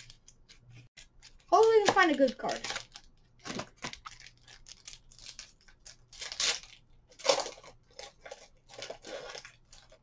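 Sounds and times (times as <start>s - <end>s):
foil wrapper tearing and crinkling: 0.0s - 10.0s.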